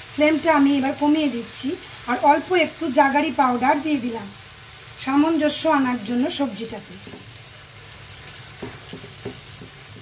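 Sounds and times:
vegetables sizzling in oil: 0.0s - 10.0s
spatula stirring in pan: 7.0s - 10.0s.

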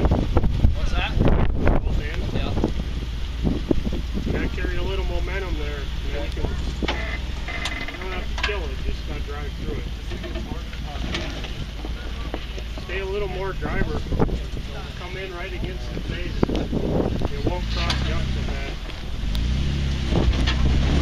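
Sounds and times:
car engine running low: 0.0s - 21.0s.

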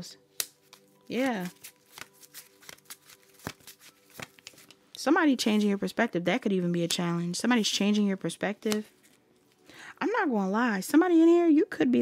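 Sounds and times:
cards clicking and flicking: 0.4s - 4.8s, 8.6s - 8.9s.

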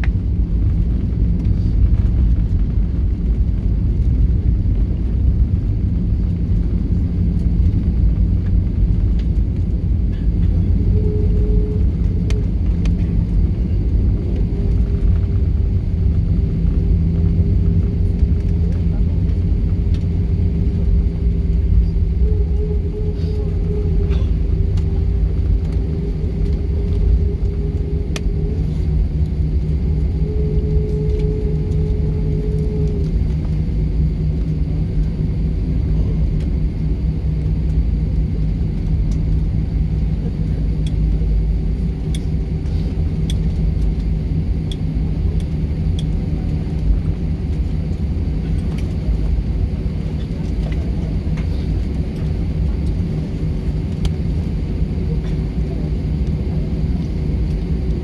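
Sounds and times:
jet engines rumbling: 0.0s - 58.0s
steady hum: 0.0s - 58.0s.

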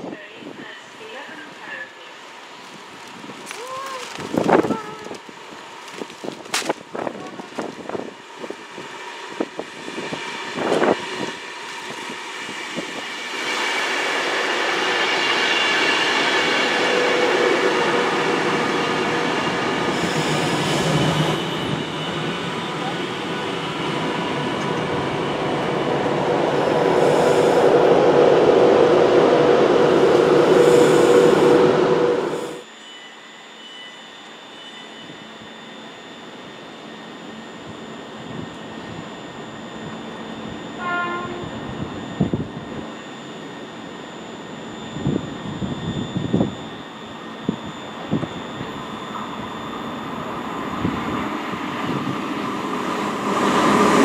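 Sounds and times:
express train passing at speed: 0.0s - 54.0s.

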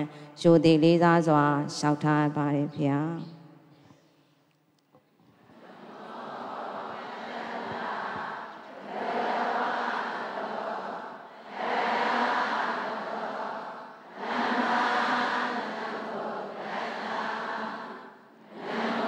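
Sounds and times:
group chanting in unison: 5.4s - 19.0s.

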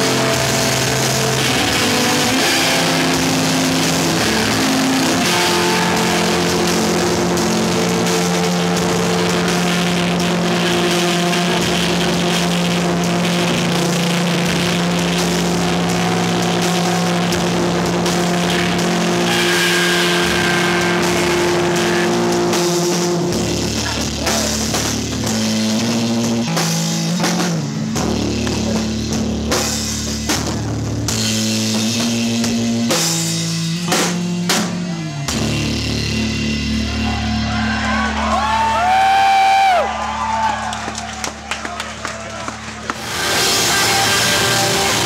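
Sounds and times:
distorted electric guitars: 0.0s - 45.0s
screamo band playing loud: 0.0s - 45.0s.

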